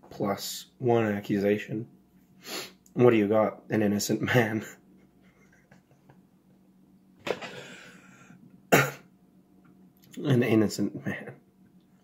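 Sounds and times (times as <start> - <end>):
man coughing: 8.7 - 9.1.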